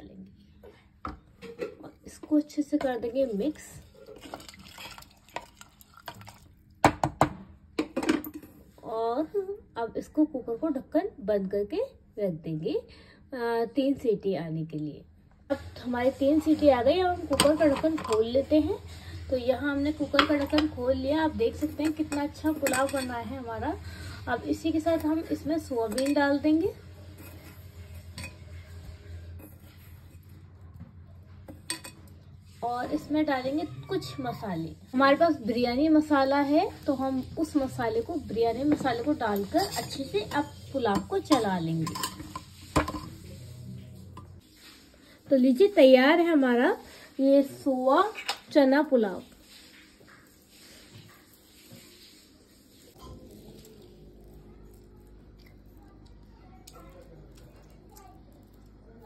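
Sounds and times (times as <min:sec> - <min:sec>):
spoon stirring rice and water: 0:02.9 - 0:06.5, 0:16.2 - 0:19.0, 0:19.9 - 0:23.4, 0:24.0 - 0:34.1, 0:34.7 - 0:44.9, 0:49.1 - 0:56.3
utensil clinking on metal pot: 0:17.3 - 0:18.3, 0:21.5 - 0:23.3, 0:25.8 - 0:26.4, 0:31.5 - 0:32.1, 0:38.7 - 0:43.2.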